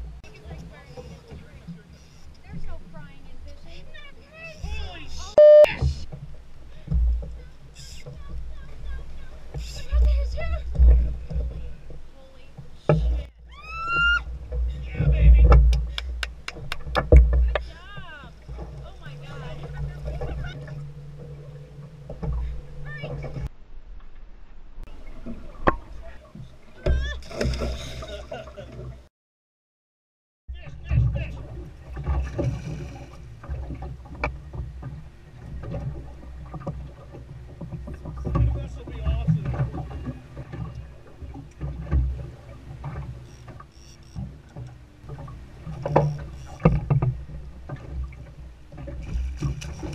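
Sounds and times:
water slapping against hull: 0.0 - 24.2, 24.9 - 29.1, 30.5 - 49.9.

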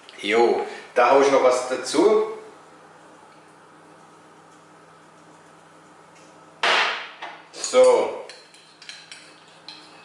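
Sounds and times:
clatter of kitchen things: 6.6 - 10.0.

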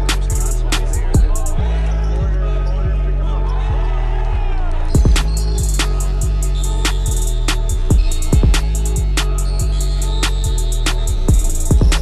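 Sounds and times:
hip-hop music: 0.0 - 12.0.

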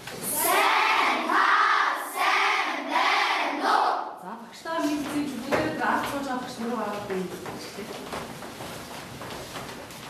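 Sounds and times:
children chanting in unison: 0.2 - 4.2.

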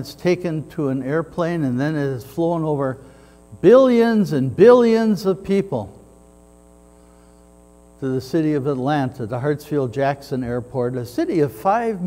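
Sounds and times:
mains hum: 0.0 - 12.0.

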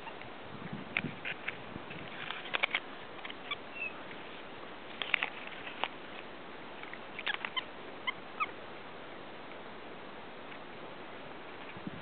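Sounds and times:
monkey high squeaks: 3.2 - 4.0, 7.2 - 8.5.

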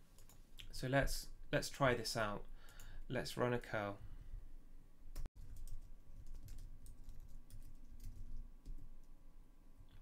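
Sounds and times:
typing on computer keyboard: 5.2 - 8.9.

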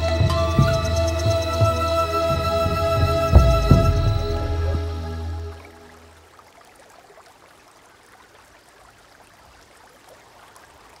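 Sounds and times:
water trickling: 0.0 - 11.0.

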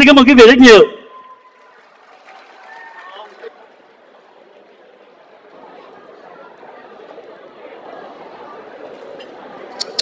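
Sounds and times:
murmur of many voices: 0.0 - 10.0.

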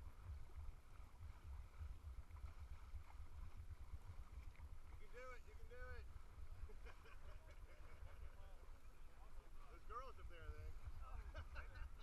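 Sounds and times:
faint low rumble: 0.0 - 12.0.

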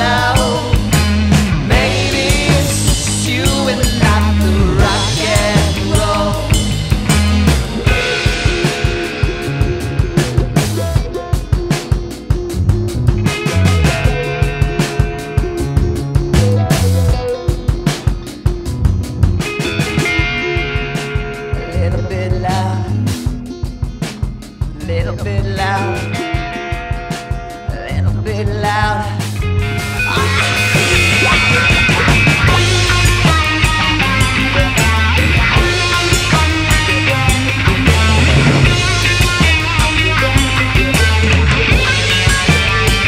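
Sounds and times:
electric bass: 0.0 - 43.0
electric guitar: 0.0 - 43.0
steady drum beat: 0.0 - 43.0.

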